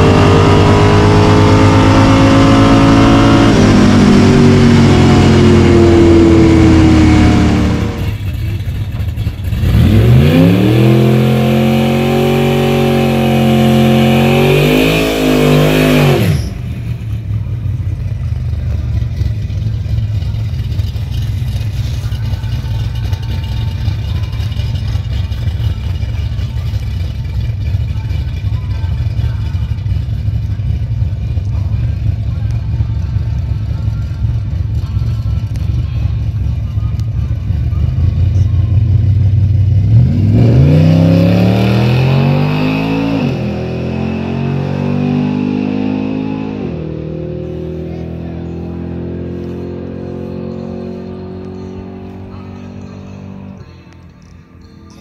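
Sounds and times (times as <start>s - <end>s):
engine revving at full throttle: 0.0s - 8.5s, 9.4s - 17.1s, 39.7s - 53.7s
engine idling low rumble: 0.0s - 14.4s, 16.2s - 42.6s, 46.5s - 55.0s.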